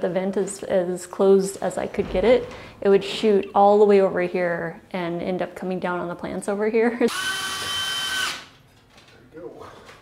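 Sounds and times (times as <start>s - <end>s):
cordless drill whining: 7.1s - 8.5s.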